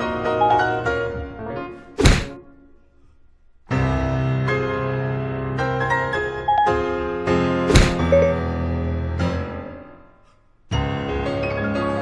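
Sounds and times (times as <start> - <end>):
piano music: 0.0 - 2.8, 3.7 - 10.1, 10.7 - 12.0
loud short thunk: 2.0 - 2.4, 7.7 - 8.2.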